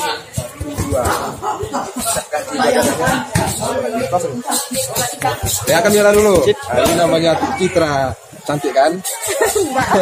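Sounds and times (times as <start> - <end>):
voices in a hall: 0.0 - 10.0.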